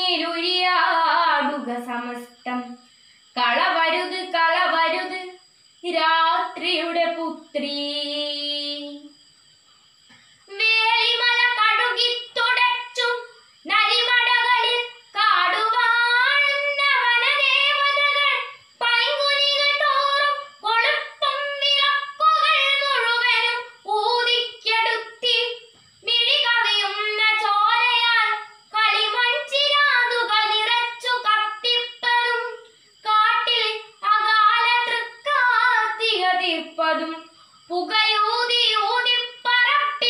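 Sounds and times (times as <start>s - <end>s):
girl chanting a poem: 10.5s - 40.0s.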